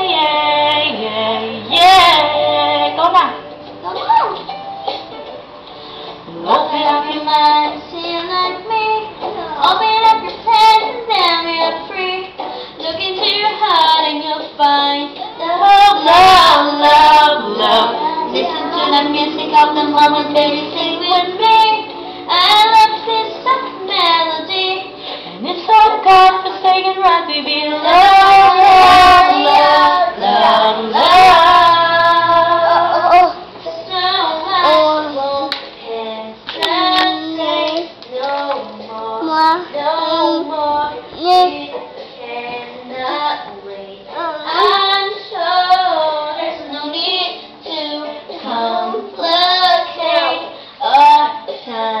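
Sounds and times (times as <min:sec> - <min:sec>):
woman singing: 0:00.0 - 0:03.5, 0:06.2 - 0:52.0
child singing pop song: 0:00.0 - 0:04.0, 0:06.3 - 0:52.0
singer breathing: 0:05.7 - 0:06.3, 0:12.4 - 0:12.8, 0:25.0 - 0:25.4, 0:50.5 - 0:50.8.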